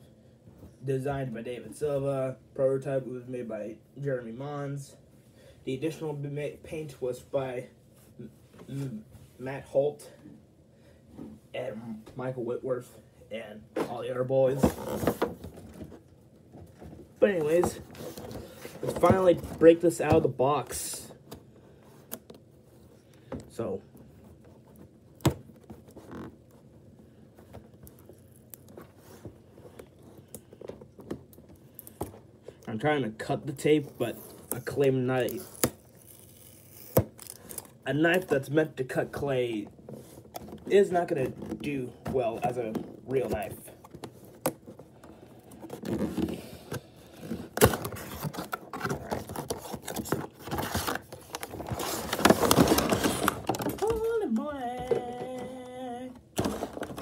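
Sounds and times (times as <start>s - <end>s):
cardboard rubbing and rustling: 13.8s - 20.4s, 39.6s - 55.7s
knife scraping packing tape: 35.3s - 37.7s.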